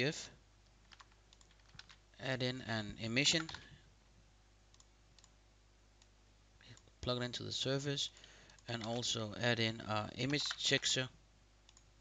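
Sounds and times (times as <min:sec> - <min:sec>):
computer mouse clicks: 0:00.6 - 0:02.0, 0:04.7 - 0:05.4, 0:08.2 - 0:09.0, 0:10.2 - 0:11.0, 0:11.6 - 0:11.9.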